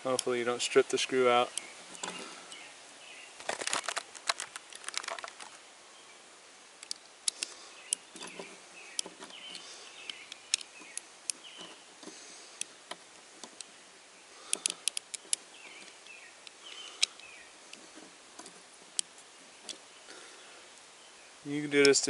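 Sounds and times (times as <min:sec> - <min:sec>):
sharp metal clicks: 0:14.5 - 0:17.3.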